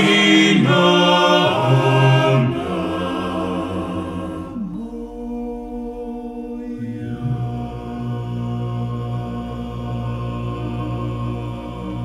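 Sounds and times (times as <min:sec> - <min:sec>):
low bass voices: 0:00.0 - 0:12.0
male a cappella ensemble singing: 0:00.0 - 0:12.0.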